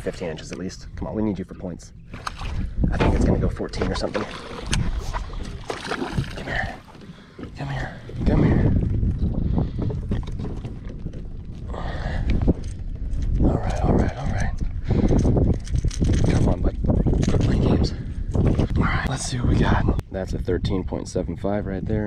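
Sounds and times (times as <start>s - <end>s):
wind on microphone: 2.0s - 22.0s.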